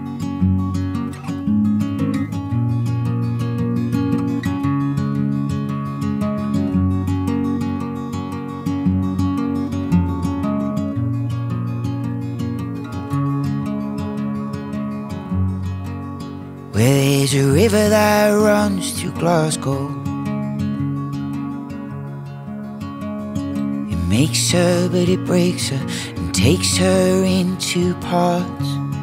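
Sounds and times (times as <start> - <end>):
acoustic guitar picking over chords: 0.0 - 29.0.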